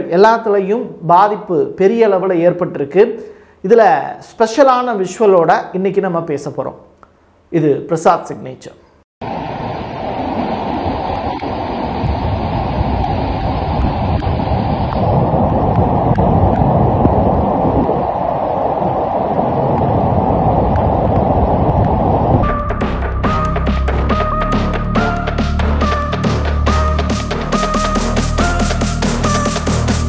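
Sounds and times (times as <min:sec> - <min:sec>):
music with held tones: 0:22.4 - 0:30.0.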